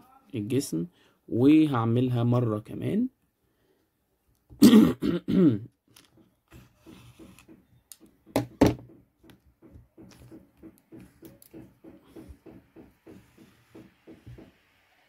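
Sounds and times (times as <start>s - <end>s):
person clearing throat: 4.6s - 5.7s
short sharp coughs: 4.6s - 5.7s.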